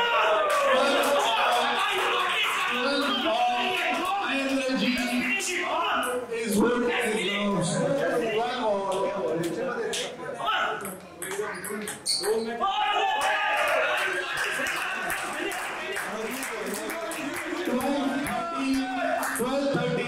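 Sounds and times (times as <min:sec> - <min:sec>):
crowd cheering and shouting: 0:00.0 - 0:06.2, 0:12.6 - 0:20.0.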